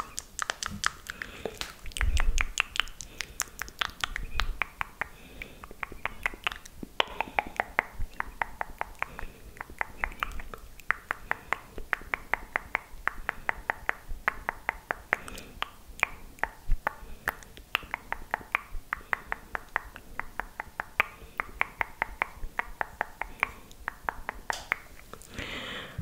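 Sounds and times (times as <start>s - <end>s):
wet tongue and lip clicks: 0.0s - 25.4s.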